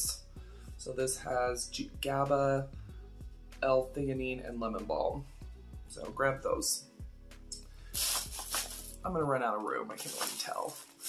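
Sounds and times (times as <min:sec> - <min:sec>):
soft background music: 0:00.0 - 0:11.0
packaging rustling: 0:08.0 - 0:09.0, 0:10.0 - 0:11.0.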